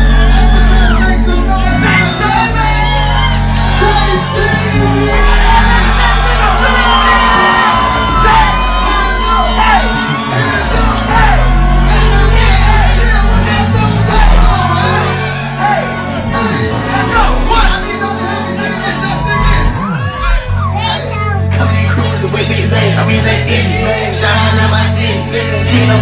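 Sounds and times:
crowd shouting along: 0.0s - 21.8s
person rapping into a microphone: 0.3s - 6.9s, 8.2s - 15.1s, 16.3s - 26.0s.

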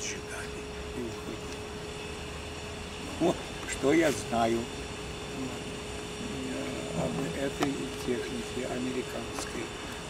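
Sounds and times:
faint hum and hiss: 0.0s - 10.0s.

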